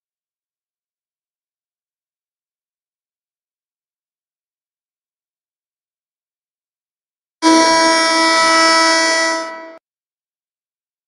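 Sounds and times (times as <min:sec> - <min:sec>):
end of game horn blast: 0:07.4 - 0:09.8.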